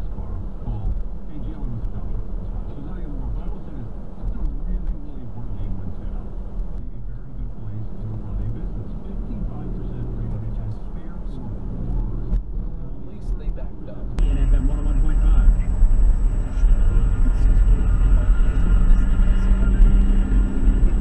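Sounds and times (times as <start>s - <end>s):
car engine and road noise: 0.0s - 21.0s
radio talk: 0.1s - 12.3s, 13.0s - 21.0s.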